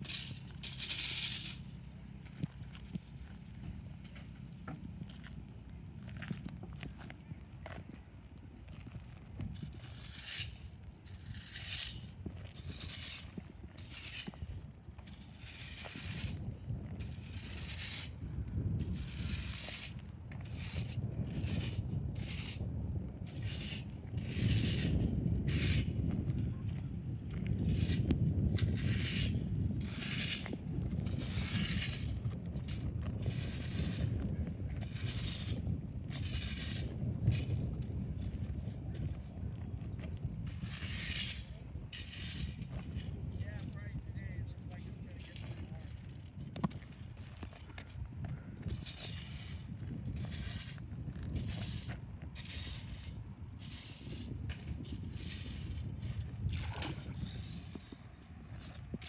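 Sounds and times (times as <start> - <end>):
metal rake scraping gravel: 0.0 - 4.8, 8.8 - 26.2, 27.0 - 59.0.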